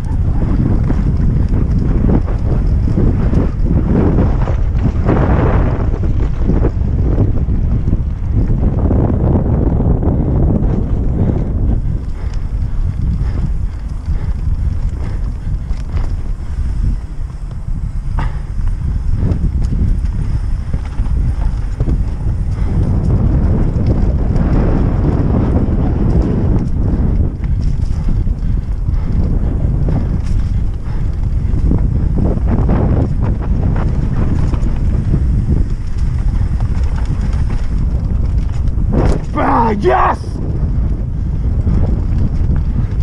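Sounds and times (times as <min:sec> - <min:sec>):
mountain bike rattling over rocks: 0:00.0 - 0:43.0
wind rushing over microphone: 0:00.0 - 0:43.0.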